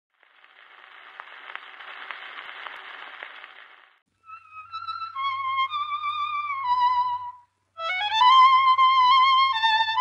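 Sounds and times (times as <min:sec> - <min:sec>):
record surface hiss: 0:00.1 - 0:10.0.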